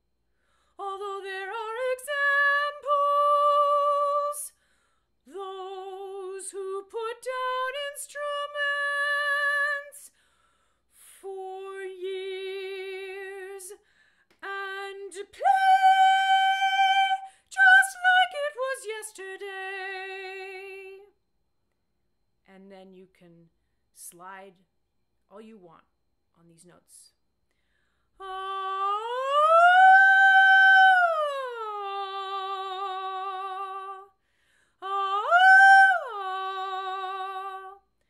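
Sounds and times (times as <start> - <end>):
woman singing a cappella: 0.7 - 4.6, 5.2 - 10.2, 11.0 - 21.1, 28.2 - 38.0.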